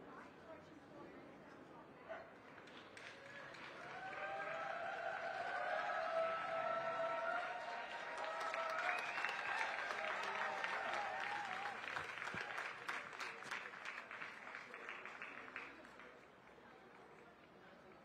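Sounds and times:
audience applauding: 2.7 - 16.2
sharp claps: 8.1 - 16.1.

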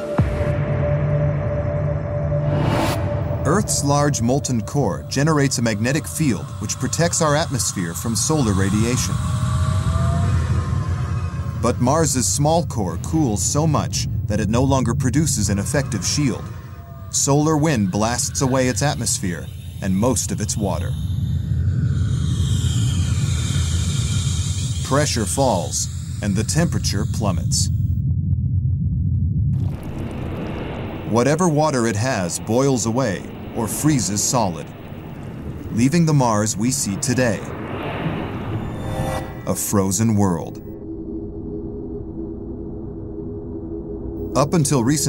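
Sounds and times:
deep rumbling drone: 0.0 - 45.0.

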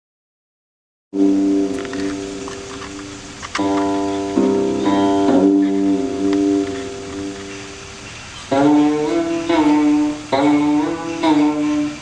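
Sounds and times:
plucked zither notes: 1.2 - 12.0.

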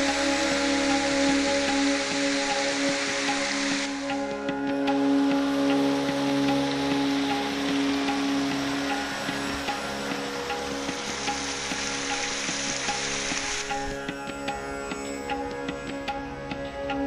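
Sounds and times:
small waterfall splashing: 0.0 - 14.6
ambient drone music: 0.0 - 17.0.

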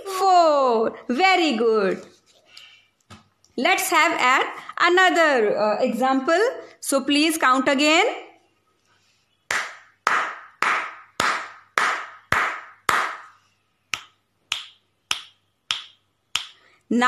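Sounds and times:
hand claps: 9.5 - 16.6
finger snaps: 13.9 - 16.6.

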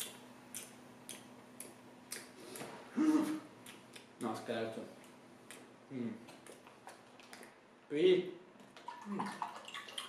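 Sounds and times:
man humming: 2.9 - 3.5.

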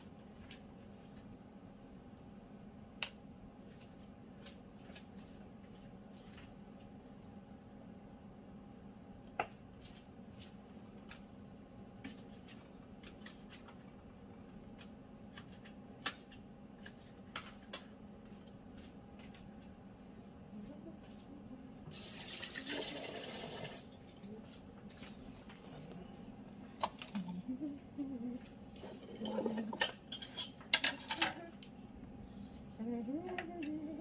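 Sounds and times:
steady low hum: 0.0 - 22.1, 23.8 - 34.0.

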